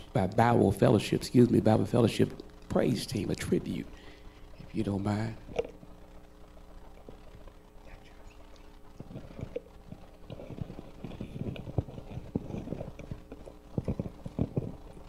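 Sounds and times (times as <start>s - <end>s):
sound system hum: 0.0s - 15.0s.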